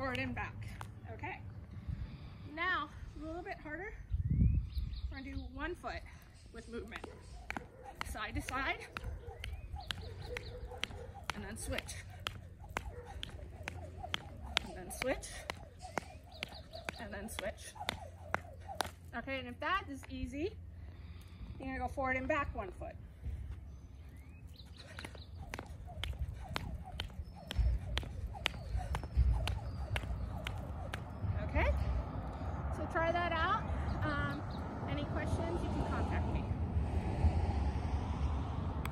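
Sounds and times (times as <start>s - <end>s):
jump rope clicking on mat: 6.7s - 19.3s, 24.8s - 31.2s.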